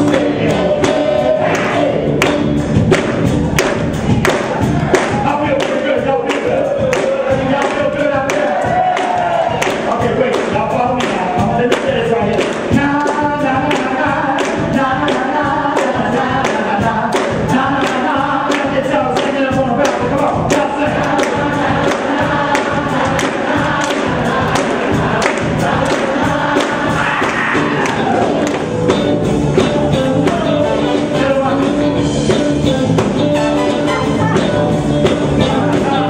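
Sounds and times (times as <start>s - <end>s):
male voices singing in harmony: 0.0s - 2.2s, 5.2s - 28.6s
drum beat: 0.0s - 36.0s
soul band playing: 0.0s - 36.0s.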